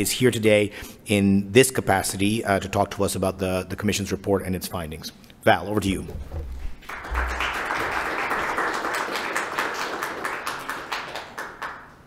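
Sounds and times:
audience applauding: 6.8 - 12.0.

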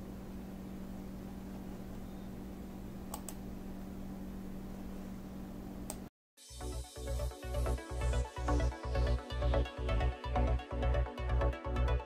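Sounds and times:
steady low hum: 0.0 - 6.1.

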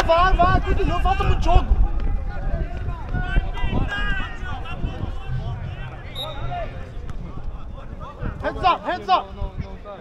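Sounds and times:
steady low rumble: 3.4 - 8.4.

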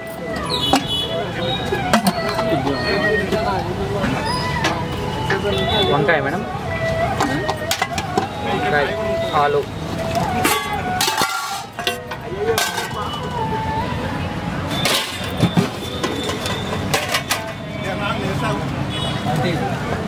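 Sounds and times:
people talking: 0.0 - 16.0, 17.2 - 20.0
street noise: 0.0 - 20.0
ladles clinking against steel pots: 0.4 - 1.0, 1.6 - 2.6, 7.1 - 8.3, 10.4 - 13.4, 14.7 - 17.7.

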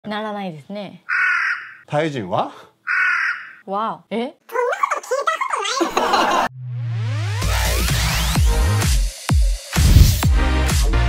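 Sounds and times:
crow caw: 1.1 - 1.8, 2.9 - 3.6.

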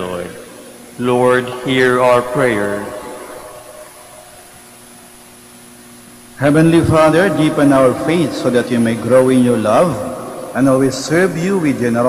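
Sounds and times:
faint hum: 0.0 - 12.0
steady hiss: 0.0 - 12.0.

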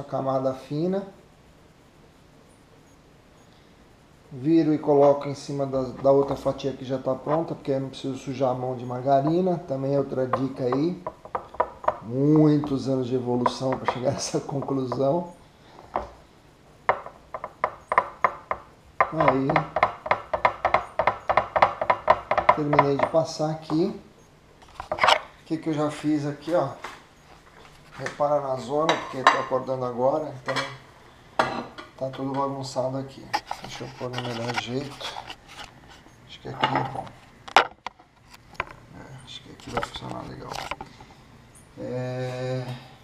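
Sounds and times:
objects knocking on kitchen counter: 10.3 - 12.0, 16.9 - 23.2.

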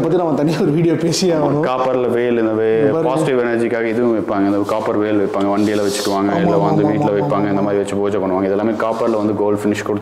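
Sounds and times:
man speaking: 0.0 - 10.0
rubbing noise: 4.3 - 6.8, 7.6 - 9.5.

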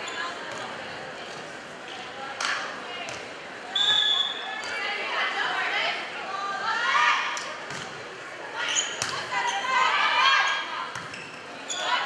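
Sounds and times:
crowd chatter: 0.0 - 12.0
referee's whistle blast: 3.8 - 4.4.

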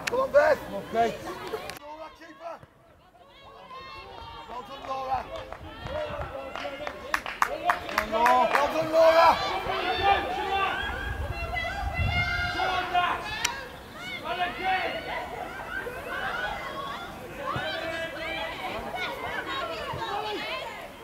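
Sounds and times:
people shouting and calling: 0.0 - 21.0.

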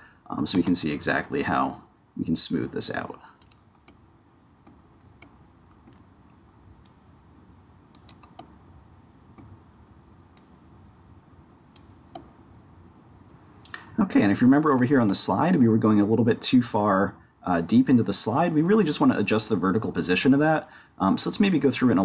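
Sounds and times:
low room noise: 0.0 - 22.0
computer mouse clicks: 3.4 - 4.0, 4.6 - 6.1, 7.9 - 8.6, 11.7 - 12.3.

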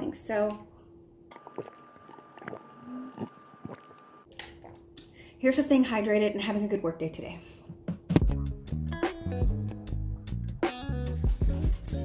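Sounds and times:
person gulping water: 1.3 - 4.8.

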